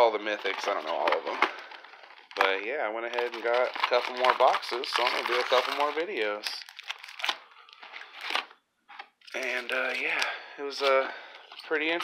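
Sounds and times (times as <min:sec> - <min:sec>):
foil wrappers crinkling: 0:00.3 - 0:08.6.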